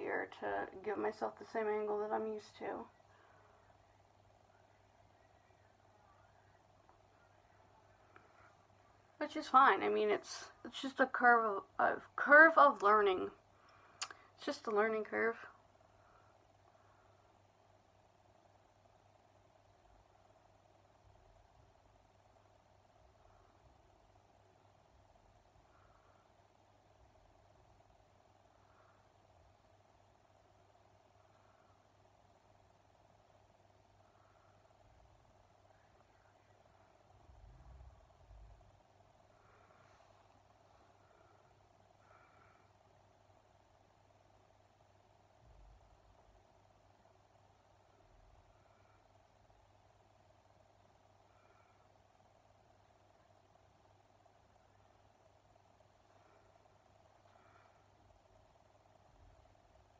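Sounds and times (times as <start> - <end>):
faint room hum: 0.0 - 59.9.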